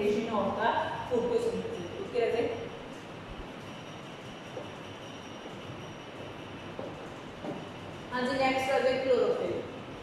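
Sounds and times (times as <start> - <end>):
room noise hiss and rumble: 0.0 - 10.0.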